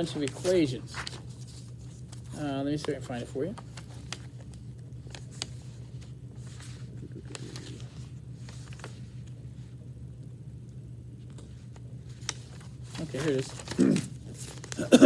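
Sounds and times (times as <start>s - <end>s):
paper rustling: 0.0s - 9.6s, 11.2s - 15.0s
low room hum: 0.0s - 15.0s.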